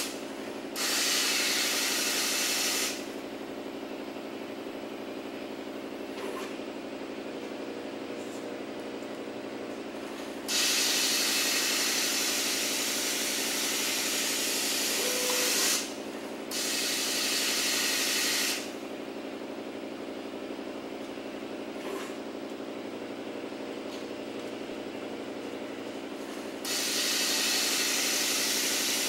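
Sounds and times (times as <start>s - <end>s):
machine hum: 3.0s - 29.0s.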